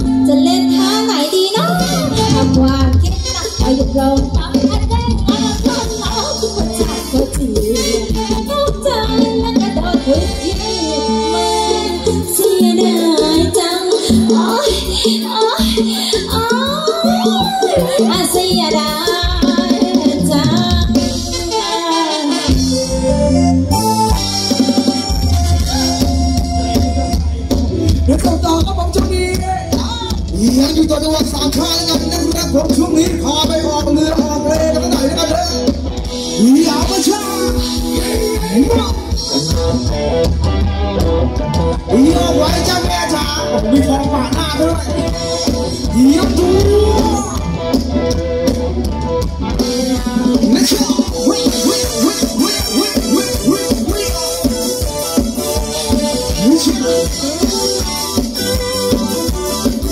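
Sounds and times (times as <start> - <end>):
heavy bass line: 0.0 - 12.7, 22.5 - 59.9
drum kit steady beat: 0.0 - 59.9
live band music: 0.0 - 59.9.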